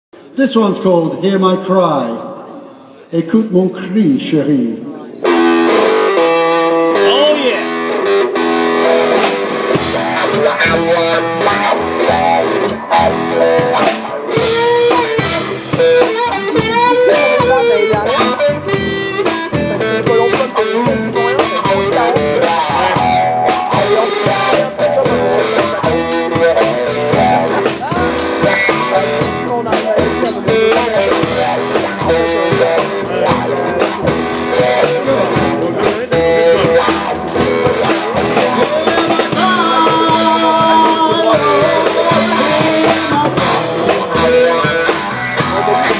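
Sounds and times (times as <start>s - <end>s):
electric guitar lead with wah: 4.5s - 45.9s
drum kit: 5.2s - 45.9s
upright double bass: 8.3s - 45.9s.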